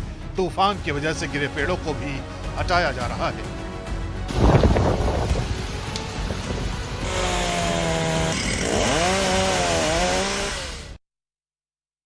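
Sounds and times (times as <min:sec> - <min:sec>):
chainsaw cutting through tree: 0:05.6 - 0:11.0.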